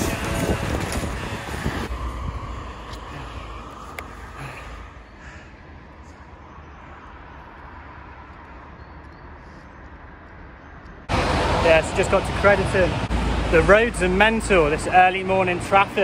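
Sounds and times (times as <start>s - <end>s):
street traffic rumble: 0.0s - 16.0s.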